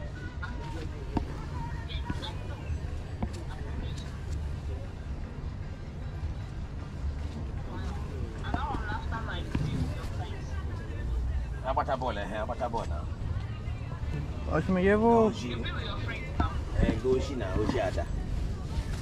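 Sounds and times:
people talking: 0:00.0 - 0:06.5, 0:07.4 - 0:19.0
steady low rumble: 0:00.0 - 0:19.0.

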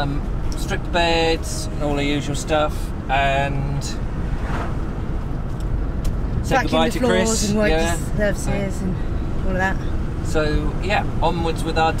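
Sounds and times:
road and engine rumble: 0:00.0 - 0:12.0
person speaking: 0:06.5 - 0:09.0.

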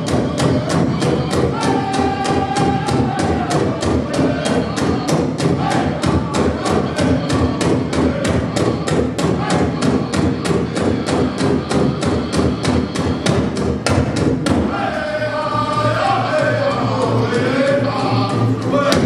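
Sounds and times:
group singing: 0:00.0 - 0:19.0
large drum fast steady beat: 0:00.0 - 0:19.0.

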